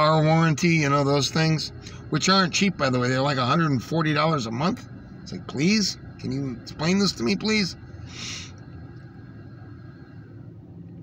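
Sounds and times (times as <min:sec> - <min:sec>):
faint hum: 0:00.0 - 0:11.0
low vehicle rumble: 0:00.0 - 0:11.0.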